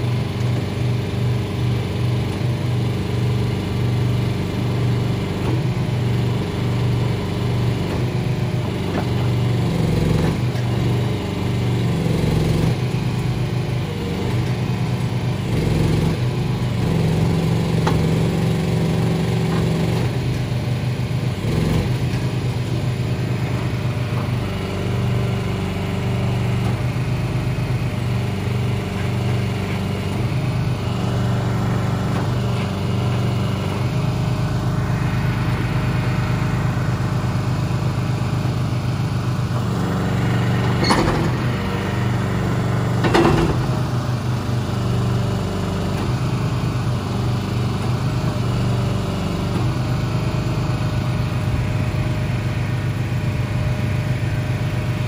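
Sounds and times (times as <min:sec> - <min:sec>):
small engine running hydraulics: 0:00.0 - 0:55.0.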